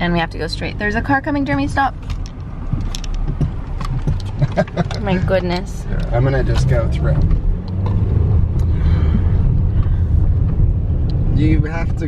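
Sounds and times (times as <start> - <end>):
car engine and tyres rumble: 0.0 - 12.0.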